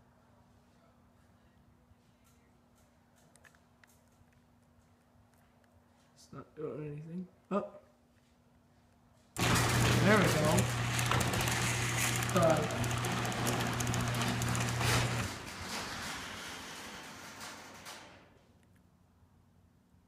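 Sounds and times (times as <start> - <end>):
garage door opener motor humming: 9.4 - 18.3.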